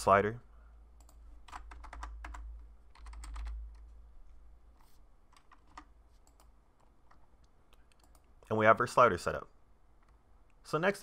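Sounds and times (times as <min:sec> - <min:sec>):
low steady hum: 0:00.0 - 0:11.0
computer keyboard typing: 0:01.0 - 0:03.9, 0:05.3 - 0:07.2, 0:07.9 - 0:08.3.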